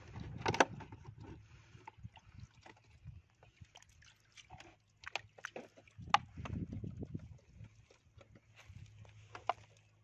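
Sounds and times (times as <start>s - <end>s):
plastic bottle clicking and crackling: 5.0s - 6.6s.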